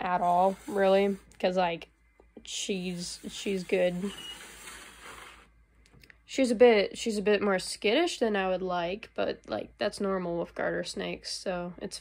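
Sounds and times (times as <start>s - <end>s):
glass door scraping along track: 0.0s - 1.2s, 2.8s - 5.5s.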